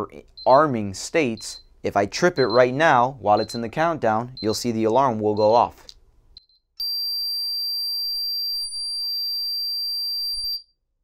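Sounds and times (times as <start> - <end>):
short beep: 6.4 - 10.7.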